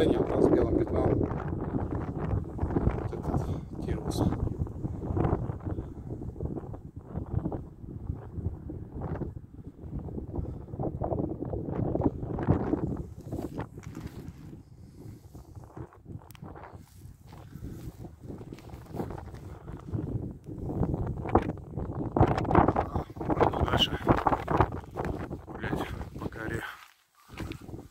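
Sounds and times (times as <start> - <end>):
wind buffeting microphone: 0.0 - 27.9.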